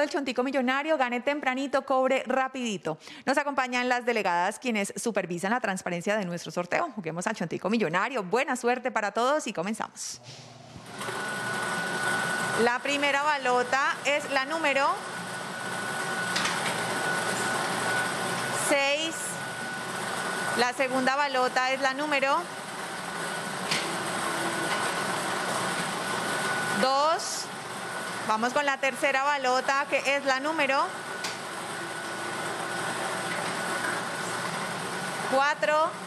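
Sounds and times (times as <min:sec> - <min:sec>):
lottery machine whirring: 0:10.3 - 0:36.0.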